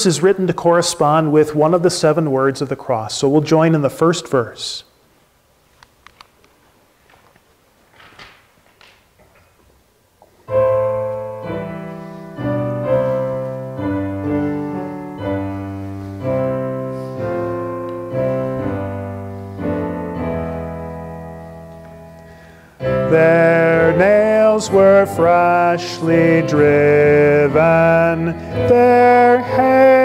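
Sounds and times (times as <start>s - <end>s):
piano playing slow chords: 10.4s - 30.0s
voices singing a hymn: 23.0s - 30.0s.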